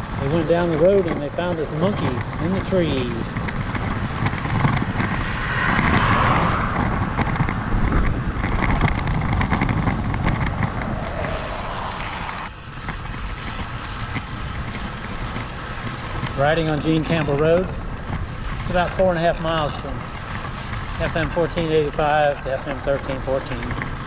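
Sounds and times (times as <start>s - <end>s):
bicycle road noise: 0.0s - 24.0s
wind rushing over microphone: 0.0s - 24.0s.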